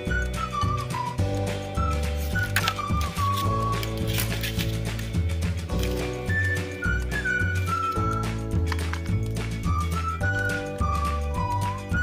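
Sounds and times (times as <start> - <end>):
whistle-like melody: 0.0 - 4.1, 5.9 - 8.7, 9.4 - 12.0.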